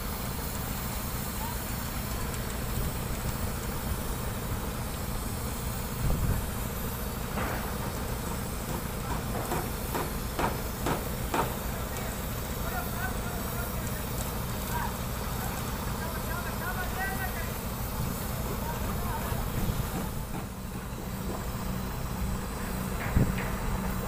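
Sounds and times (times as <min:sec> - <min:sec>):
mixer truck diesel engine: 0:00.0 - 0:24.0.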